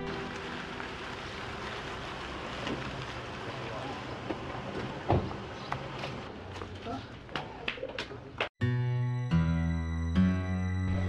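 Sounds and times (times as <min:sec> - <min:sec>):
low engine hum: 0:00.0 - 0:06.4
tyres on wet gravel: 0:00.0 - 0:06.7.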